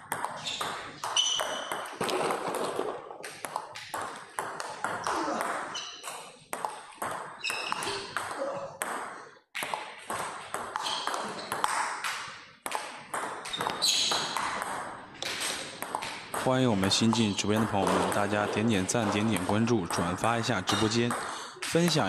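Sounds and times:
shoes squeaking on floor: 0:00.4 - 0:02.4, 0:05.0 - 0:06.3, 0:07.4 - 0:08.6, 0:10.8 - 0:11.6, 0:13.4 - 0:14.4.

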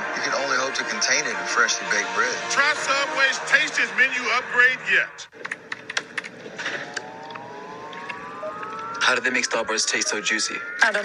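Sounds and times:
rising layered electronic tone: 0:06.4 - 0:11.0.

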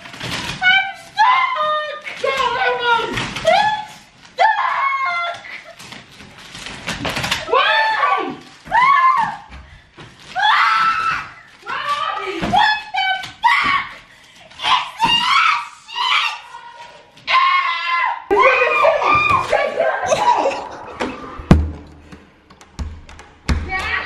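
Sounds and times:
young women screaming and squealing: 0:07.5 - 0:09.5, 0:10.4 - 0:14.0, 0:14.6 - 0:21.4.

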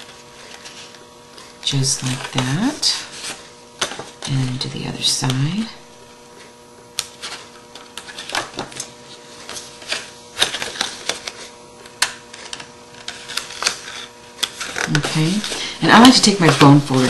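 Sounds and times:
paper being folded: 0:00.0 - 0:05.0, 0:06.4 - 0:17.0
faint steady hum: 0:00.0 - 0:17.0.

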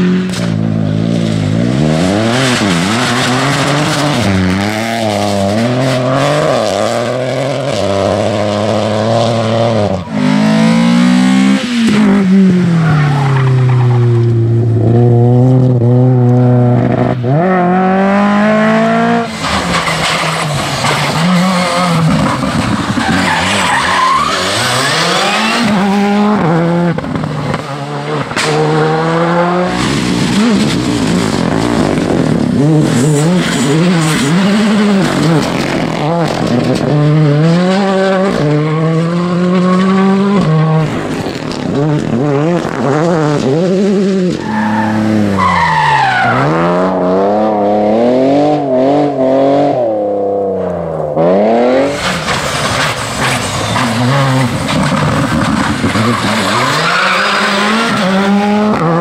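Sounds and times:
rally car engines revving: 0:00.0 - 0:59.0.

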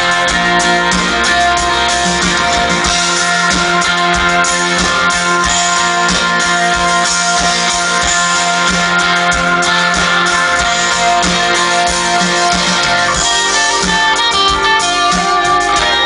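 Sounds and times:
guitar: 0:00.0 - 0:16.0
keyboard chords: 0:00.0 - 0:16.0
low drum beat: 0:00.0 - 0:16.0.

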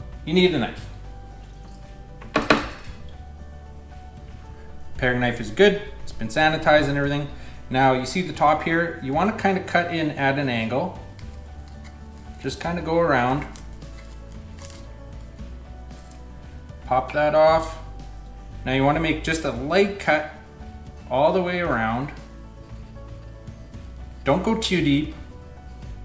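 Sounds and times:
soft background music: 0:00.0 - 0:26.0
knife scraping fruit rind: 0:11.0 - 0:16.4.

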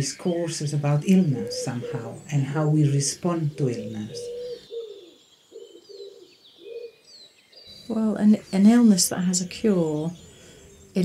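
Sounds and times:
small birds chirping: 0:00.0 - 0:11.0
pigeon cooing: 0:00.9 - 0:07.0.

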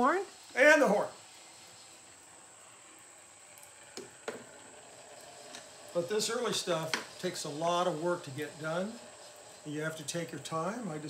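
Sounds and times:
phonograph motor whirring: 0:00.0 - 0:11.0.

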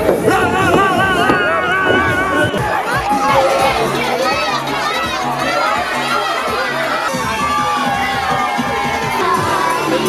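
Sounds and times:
crowd cheering and shouting: 0:00.0 - 0:10.0
pulsing music bass line: 0:00.0 - 0:10.0.

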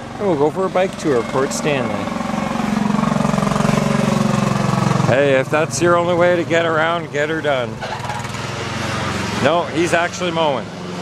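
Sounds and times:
lawn mower engine running: 0:00.0 - 0:11.0.

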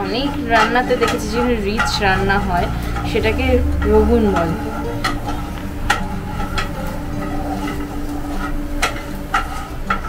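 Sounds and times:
wooden spatula knocking on frying pan: 0:00.0 - 0:07.0
mechanical kitchen hum: 0:00.0 - 0:10.0.

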